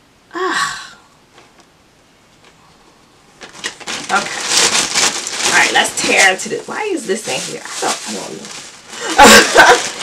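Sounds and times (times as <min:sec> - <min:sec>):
plastic bag crinkling: 0:03.4 - 0:10.0.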